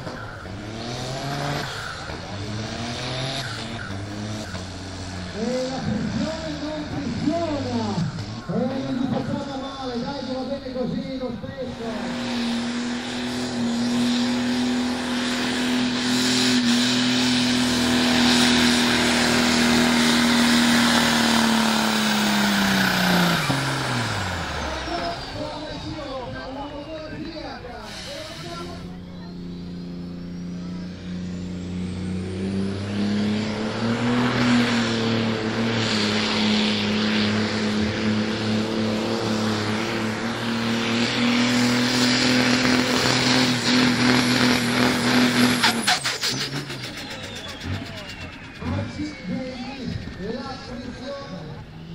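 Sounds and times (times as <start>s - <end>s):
diesel tractor engine revving: 0.0s - 51.9s
turbo whistle: 45.4s - 51.9s.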